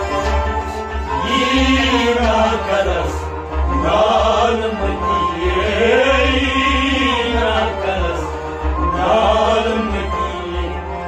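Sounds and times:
harmonium accompaniment: 0.0s - 11.0s
people singing: 0.0s - 11.0s.

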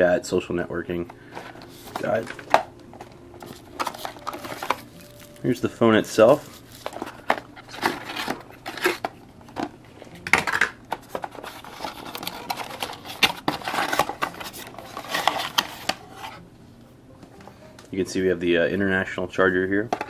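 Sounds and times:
cardboard and plastic rustling: 0.9s - 16.4s.

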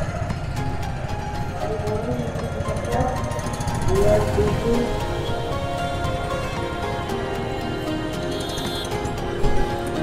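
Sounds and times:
faint music: 0.0s - 10.0s
motorcycle engine rumbling: 0.0s - 10.0s.

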